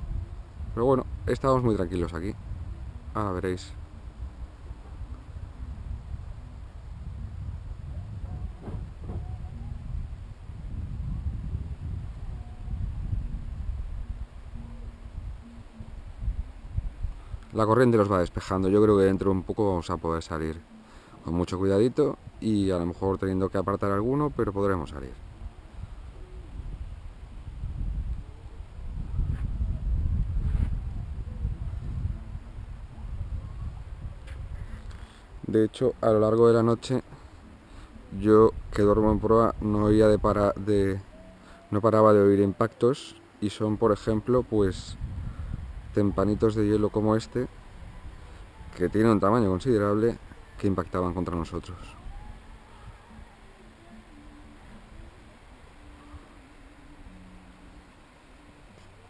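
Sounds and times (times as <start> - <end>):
wind buffeting microphone: 0.0 - 20.3, 22.1 - 41.2, 43.7 - 53.5.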